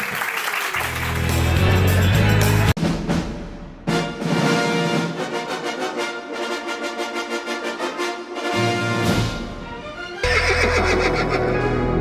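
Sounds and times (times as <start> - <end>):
logo music: 0.9 - 5.8
brass music chord: 3.9 - 9.6, 10.2 - 12.0
horse whinny: 10.2 - 11.7.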